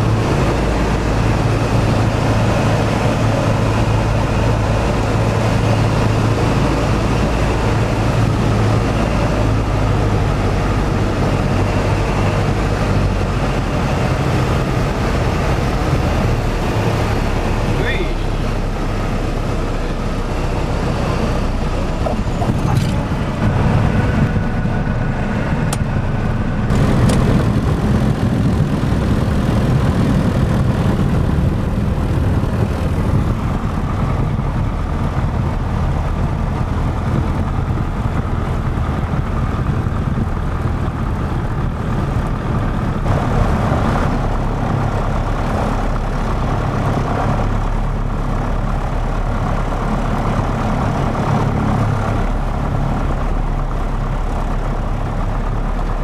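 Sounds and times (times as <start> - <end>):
propeller plane engine droning: 0.0 - 56.0
wind and airframe noise: 0.0 - 56.0.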